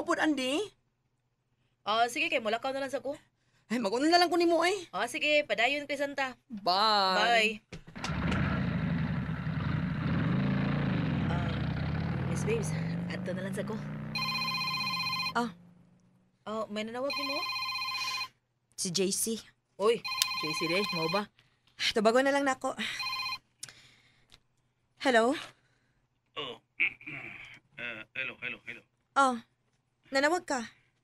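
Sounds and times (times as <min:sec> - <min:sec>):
vehicle engine drone: 0:08.0 - 0:16.3
telephone ringing: 0:14.2 - 0:15.4, 0:17.1 - 0:18.4, 0:20.0 - 0:21.3, 0:23.0 - 0:23.4.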